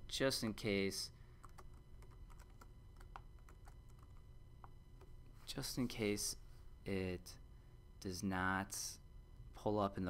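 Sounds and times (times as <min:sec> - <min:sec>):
computer keyboard typing: 0:01.4 - 0:04.2.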